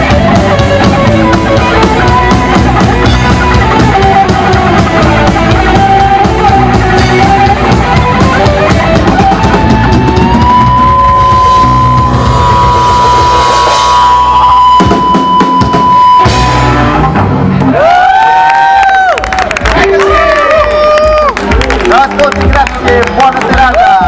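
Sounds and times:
held high guitar note: 0.0s - 17.4s
guitar pitch bends: 0.0s - 17.7s
punk rock band playing live: 0.0s - 18.3s.

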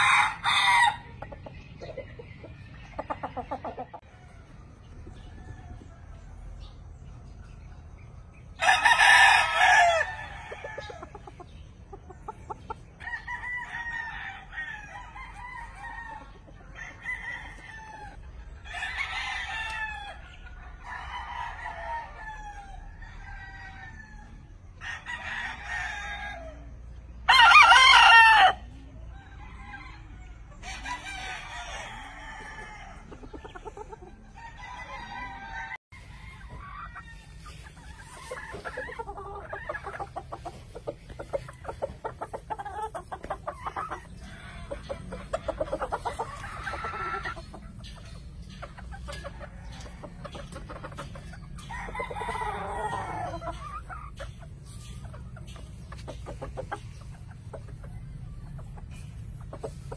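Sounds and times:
roosters crowing: 0.0s - 1.5s, 8.4s - 11.4s, 12.3s - 59.9s.

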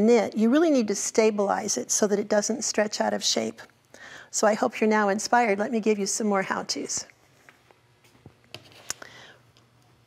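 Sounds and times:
soft breath: 3.9s - 4.3s, 8.9s - 9.5s.

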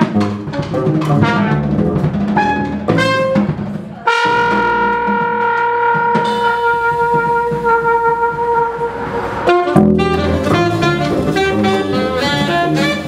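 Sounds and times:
double bass: 0.0s - 13.0s
drums: 0.0s - 13.0s
second horn: 2.4s - 13.0s
trumpet holding long note: 4.1s - 13.0s.

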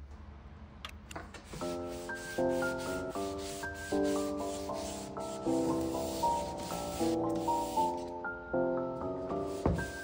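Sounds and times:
towel rubbing wooden door: 1.4s - 7.9s
gentle instrumental music: 1.5s - 10.0s.

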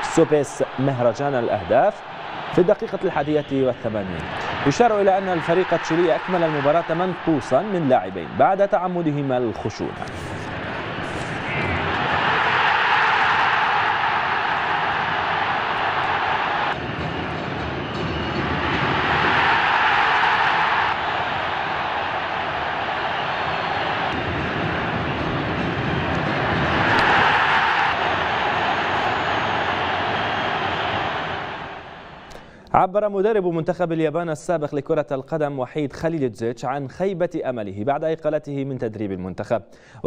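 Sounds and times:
stadium crowd cheering and roaring: 0.0s - 32.4s.

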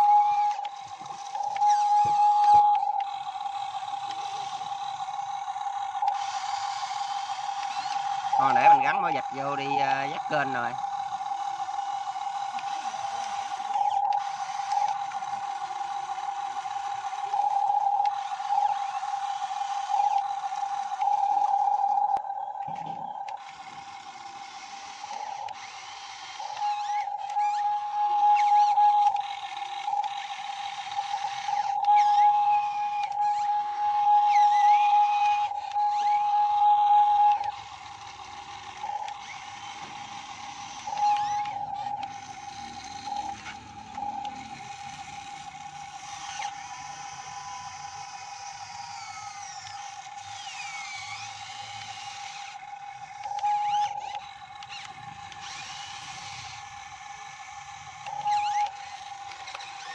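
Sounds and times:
model excavator drive whine: 0.0s - 59.9s.

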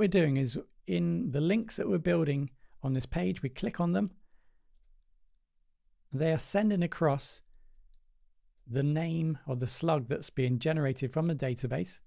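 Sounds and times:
computer mouse click: 4.7s - 5.1s.

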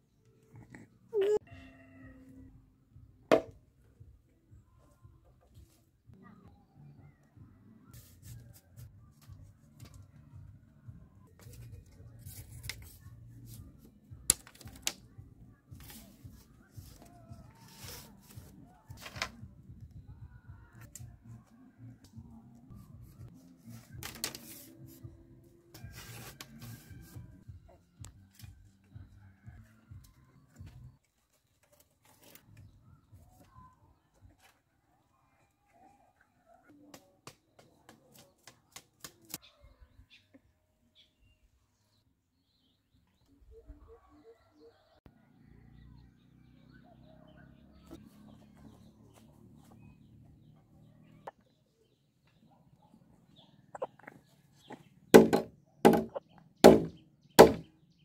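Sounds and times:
bamboo strips being handled: 11.3s - 15.1s, 15.7s - 19.4s, 23.0s - 25.1s, 25.7s - 27.2s, 30.6s - 32.6s.

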